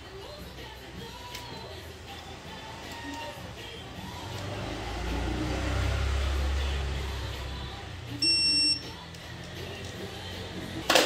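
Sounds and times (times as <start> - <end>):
torque wrench electronic beep: 8.2 - 8.9.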